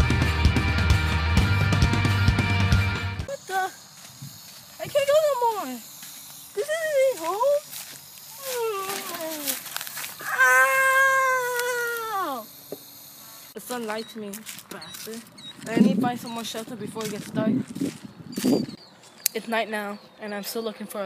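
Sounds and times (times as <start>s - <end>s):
rock music: 0.0s - 3.3s.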